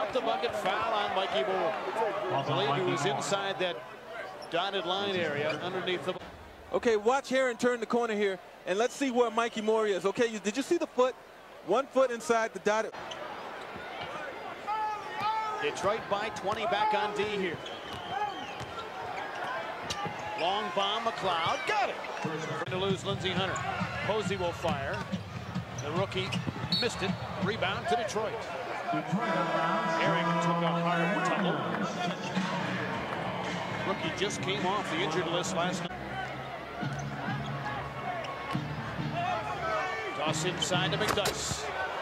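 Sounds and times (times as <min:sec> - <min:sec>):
crowd noise: 0:00.0 - 0:42.0
arena music: 0:29.1 - 0:41.2.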